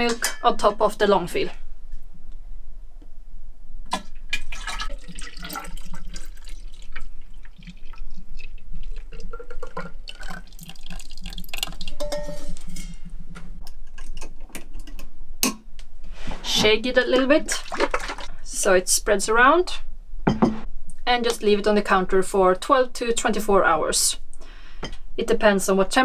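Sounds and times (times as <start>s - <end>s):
milk pouring and splashing: 4.3s - 12.7s, 17.4s - 18.3s.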